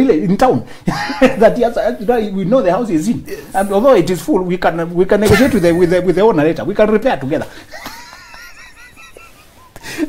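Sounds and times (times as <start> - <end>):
man laughing in high wheezes: 7.7 - 10.0.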